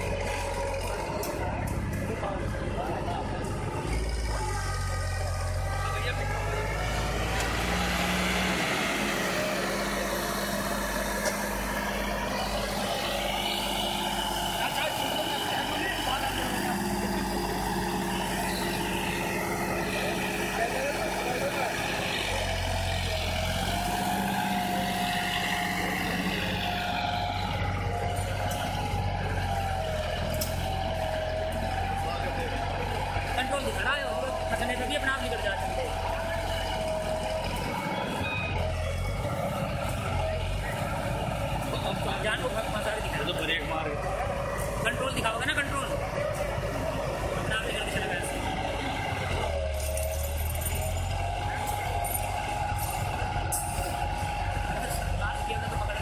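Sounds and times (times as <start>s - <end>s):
tractor diesel engine under load: 0.0s - 56.0s.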